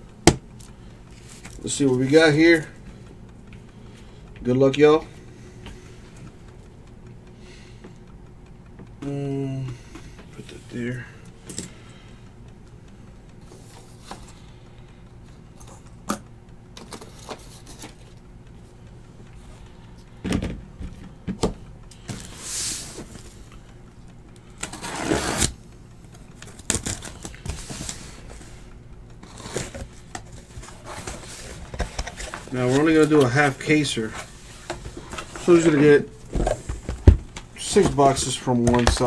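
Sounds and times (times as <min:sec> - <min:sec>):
low steady hum: 0:00.0 - 0:39.0.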